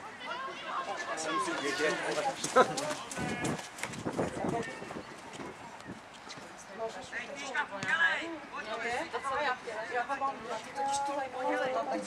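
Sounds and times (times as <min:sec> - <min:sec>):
people calling and shouting: 0:00.0 - 0:12.0.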